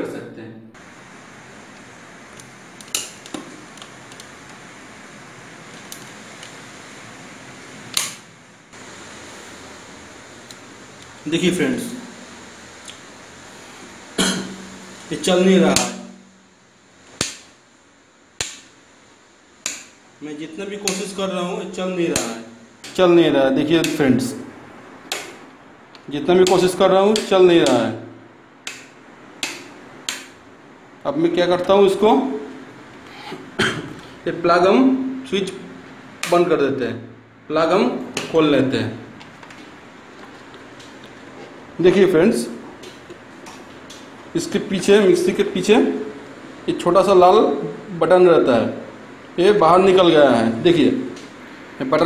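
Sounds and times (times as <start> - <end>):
faint steady hiss: 0.0 - 52.0
wall switch click: 7.9 - 8.2, 18.4 - 18.7, 19.6 - 20.0, 20.9 - 21.2, 25.1 - 25.4, 28.6 - 30.4.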